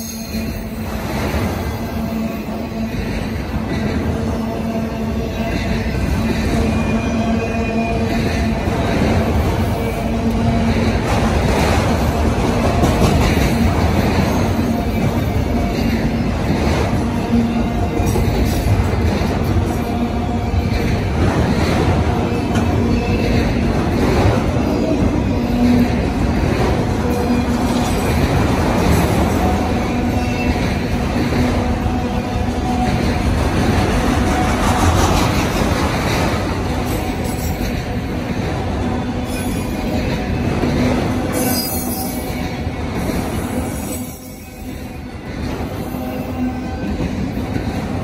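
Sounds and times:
train wheels squealing: 0.0 - 8.6, 21.8 - 26.0, 39.2 - 40.6, 41.3 - 47.8
freight train rumbling past: 0.0 - 48.0.

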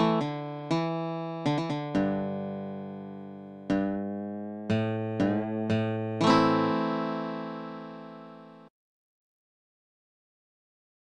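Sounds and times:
fingerstyle acoustic guitar: 0.0 - 8.4.

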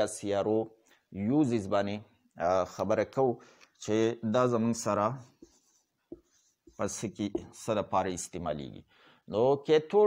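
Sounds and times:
man speaking: 0.0 - 5.5, 6.7 - 10.0
marker writing on whiteboard: 4.6 - 7.9.

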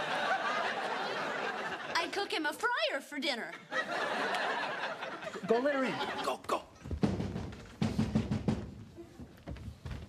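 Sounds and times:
drum fill: 6.8 - 9.0.

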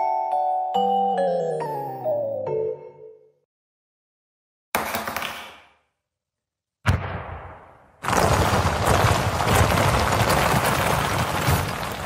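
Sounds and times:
explosion boom: 6.8 - 12.0.

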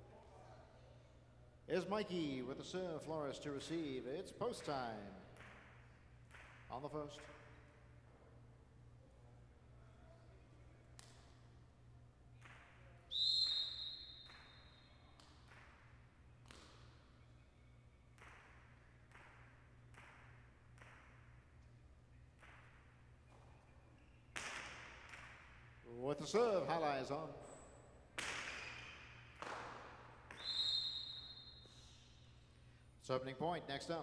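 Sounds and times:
steady high whistle: 13.1 - 15.0, 30.3 - 32.3
ball cracking against walls: 24.3 - 25.7.

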